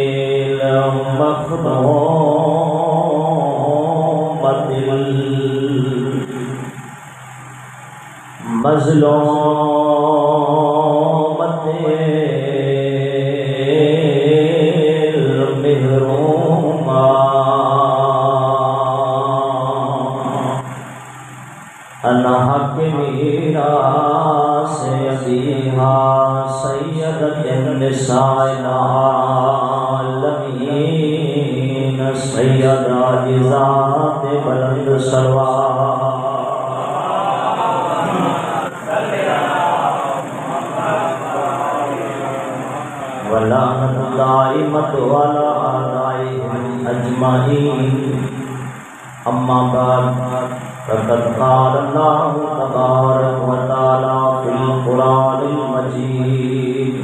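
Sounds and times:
man chanting through loudspeaker: 0:00.0 - 0:07.2, 0:08.4 - 0:21.0, 0:22.0 - 0:57.0.

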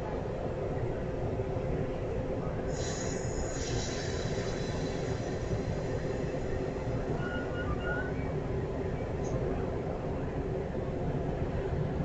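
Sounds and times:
railcar wheels rumbling on rail: 0:00.0 - 0:12.0
high-pitched wheel squeal: 0:02.8 - 0:08.4.

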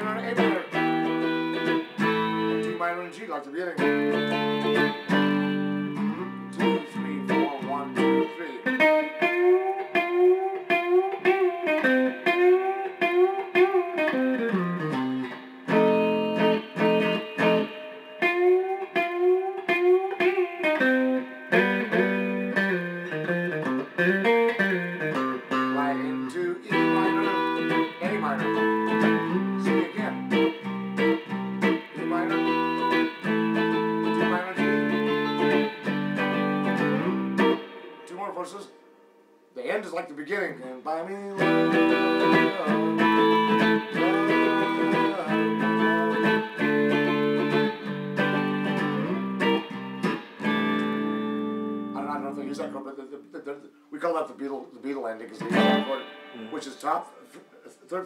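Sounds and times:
electric guitar strumming chords: 0:00.0 - 0:39.4, 0:41.1 - 0:52.9, 0:55.3 - 0:57.3.

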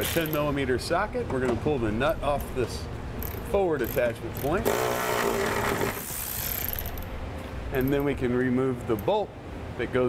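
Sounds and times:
cordless ratchet motor whine: 0:04.4 - 0:07.1.

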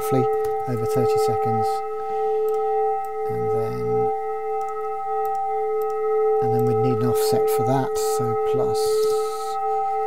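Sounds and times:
synthesized drone of held tones: 0:00.0 - 0:10.0.

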